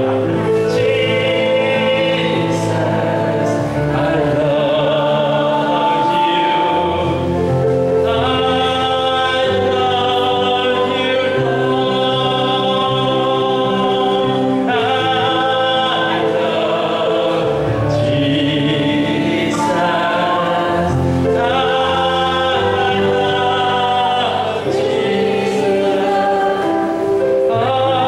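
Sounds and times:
electronic keyboard chords: 0:00.0 - 0:28.0
man singing: 0:00.0 - 0:28.0.

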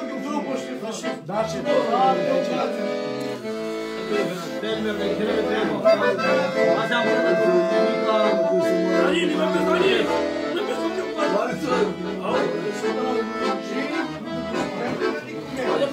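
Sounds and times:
accordion playing: 0:00.0 - 0:15.9
men's voices: 0:00.0 - 0:15.9.

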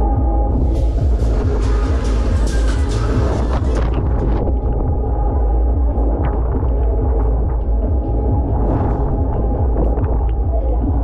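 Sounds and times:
fairground music with heavy bass: 0:00.0 - 0:11.0
rumble of spinning ride: 0:00.0 - 0:11.0.

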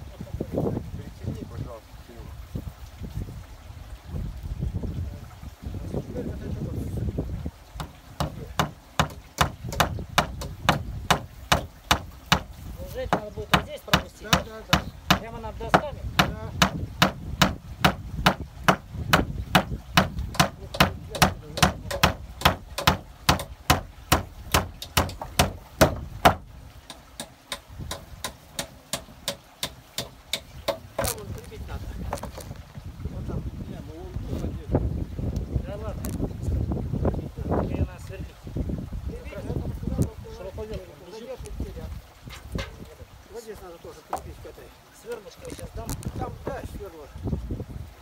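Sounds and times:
hammer driving nails into wood: 0:07.8 - 0:12.5, 0:13.1 - 0:26.4, 0:27.2 - 0:31.2.

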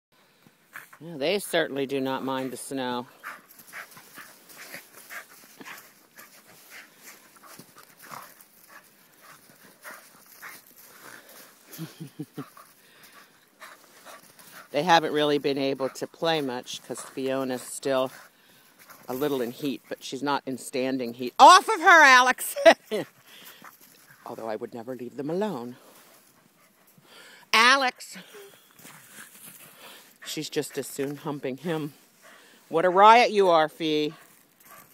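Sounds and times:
dogs scuffling in snow: 0:00.8 - 0:21.2, 0:28.3 - 0:34.9.

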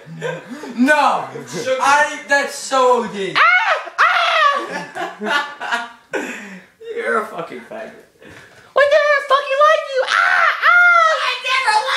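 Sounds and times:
person screaming: 0:03.4 - 0:04.8, 0:10.0 - 0:11.9.

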